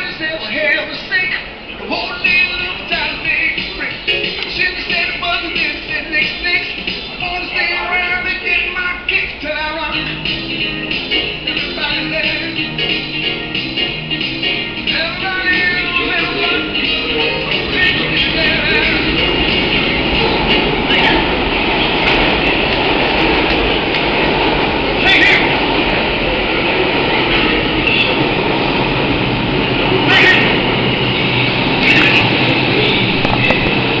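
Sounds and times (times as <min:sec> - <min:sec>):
subway train rumbling on rails: 0:00.0 - 0:34.0.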